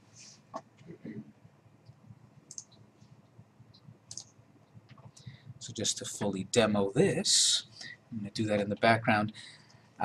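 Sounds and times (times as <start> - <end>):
computer mouse clicks: 1.9 - 2.8, 3.7 - 5.3.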